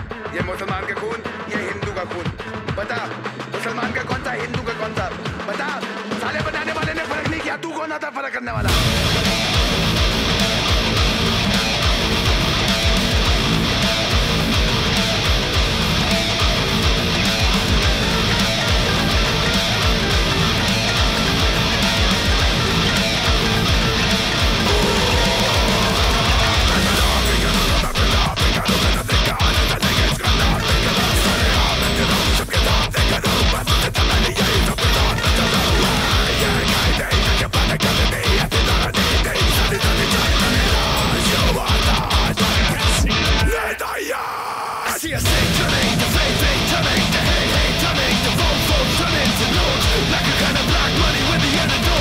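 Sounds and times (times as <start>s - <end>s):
heavy metal distorted guitar: 8.5s - 52.0s.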